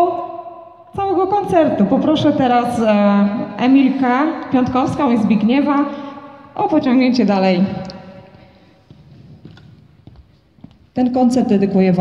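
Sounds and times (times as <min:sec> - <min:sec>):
high-heel footsteps on hard floor: 0:08.2 - 0:11.0.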